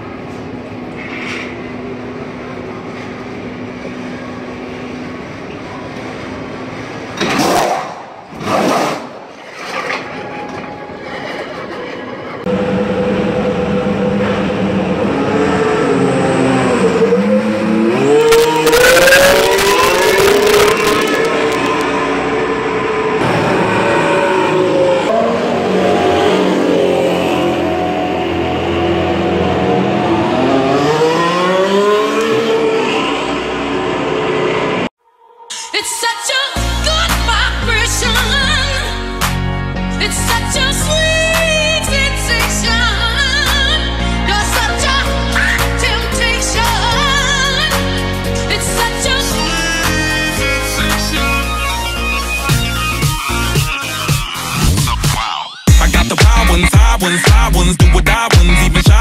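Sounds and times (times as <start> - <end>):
racing car engines revving: 12.4 - 34.9.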